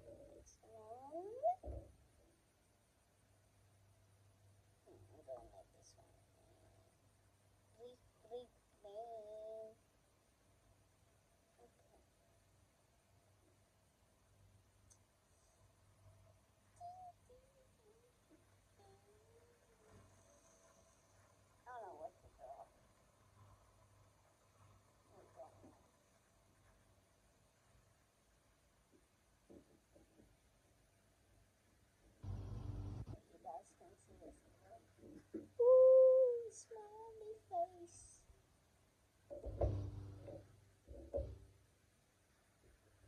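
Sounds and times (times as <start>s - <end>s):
faint background tone: 0.0s - 43.0s
soft low thump: 39.3s - 41.4s.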